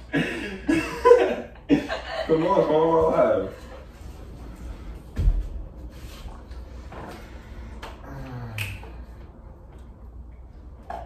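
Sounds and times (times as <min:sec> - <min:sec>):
person humming low: 0:08.0 - 0:09.0.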